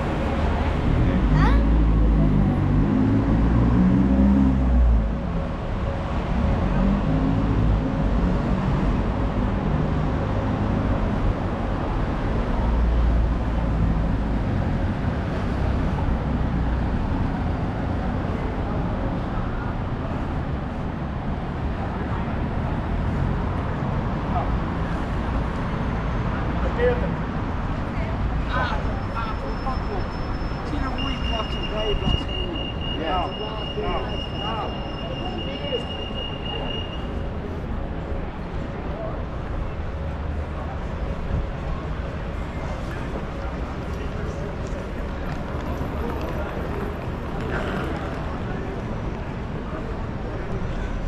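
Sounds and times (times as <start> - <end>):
passers-by talking: 0.0 - 8.0, 9.8 - 51.0
street traffic: 0.0 - 51.0.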